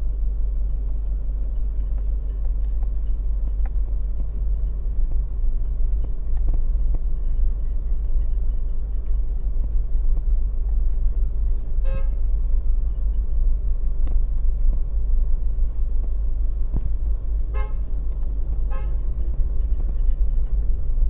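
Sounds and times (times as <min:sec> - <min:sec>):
car engine and road noise: 0:00.0 - 0:21.0
car horn toots: 0:11.8 - 0:12.2, 0:17.5 - 0:17.9, 0:18.7 - 0:19.1.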